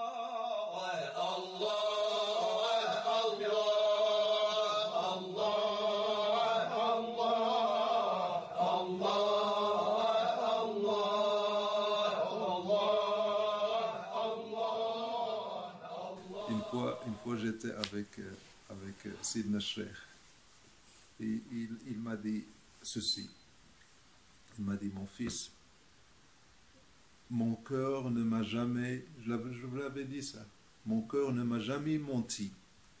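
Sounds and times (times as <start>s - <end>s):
person chanting: 0.0s - 20.1s, 27.3s - 32.5s.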